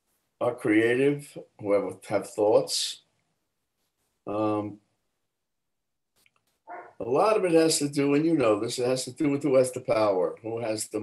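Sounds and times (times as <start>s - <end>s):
man's short voiced sound: 4.3s - 4.7s.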